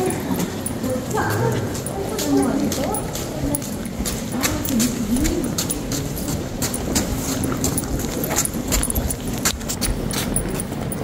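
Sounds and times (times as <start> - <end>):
people talking indistinctly: 0.0 - 6.7
footsteps clicking on walkway: 0.0 - 11.0.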